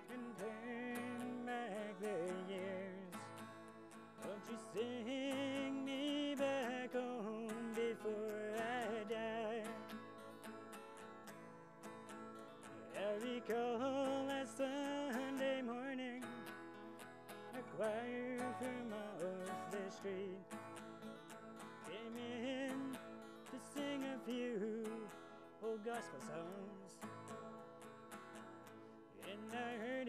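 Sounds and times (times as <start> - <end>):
acoustic guitars playing country tune: 0.0 - 30.0.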